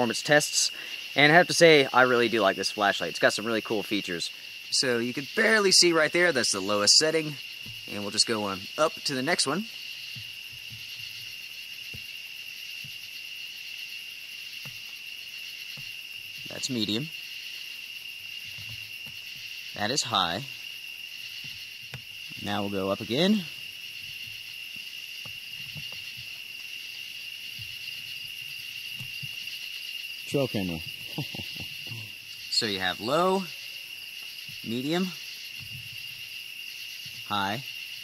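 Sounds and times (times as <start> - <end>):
crickets chirping: 0.0 - 38.0.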